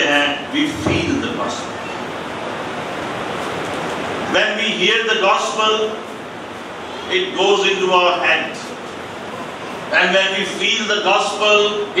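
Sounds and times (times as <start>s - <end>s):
steady hiss: 0.0s - 12.0s.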